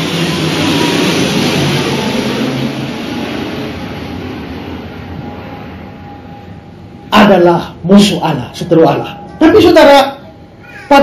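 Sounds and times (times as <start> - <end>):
vehicle passing with rushing rumble: 0.0 - 7.0.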